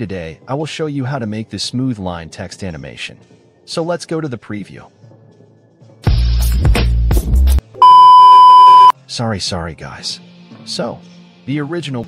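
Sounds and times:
bass-heavy music: 6.1s - 8.9s
high electronic beep: 7.8s - 8.9s.

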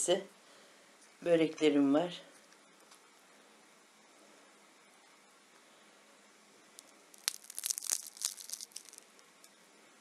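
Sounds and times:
pastry crust crackling: 6.8s - 9.5s.

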